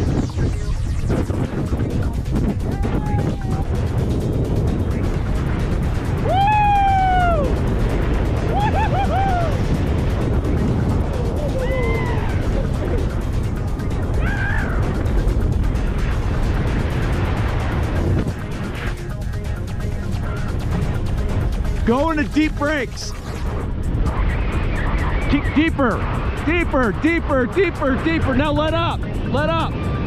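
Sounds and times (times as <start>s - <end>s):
wind rushing over microphone: 0.0s - 30.0s
person whooping: 2.8s - 3.7s, 6.2s - 7.6s, 8.5s - 9.6s, 11.2s - 12.6s, 14.2s - 14.8s.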